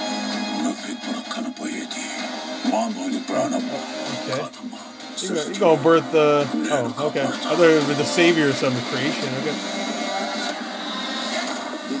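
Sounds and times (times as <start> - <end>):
film score and sound effects: 0.0 - 12.0.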